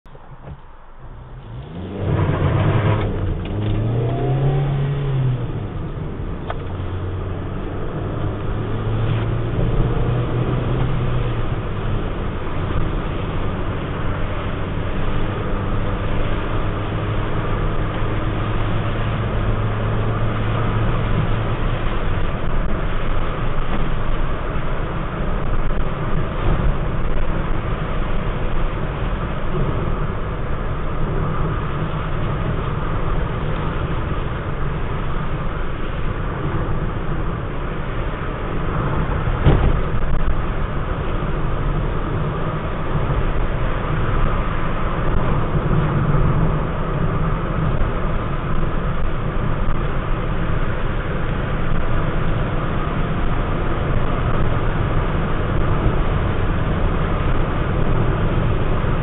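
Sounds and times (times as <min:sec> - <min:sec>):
car engine: 0:00.0 - 0:59.0
road and tyre noise: 0:00.0 - 0:59.0.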